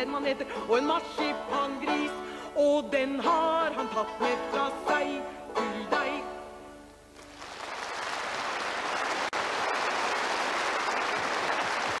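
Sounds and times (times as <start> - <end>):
audience clapping: 7.2 - 12.0.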